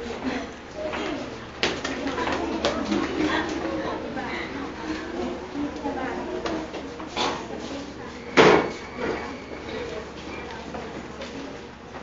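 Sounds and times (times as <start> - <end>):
children's voices: 0.2 - 11.6.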